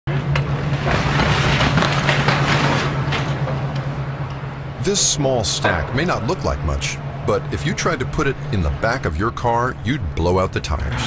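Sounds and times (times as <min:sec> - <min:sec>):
truck engine humming: 0:02.9 - 0:11.0.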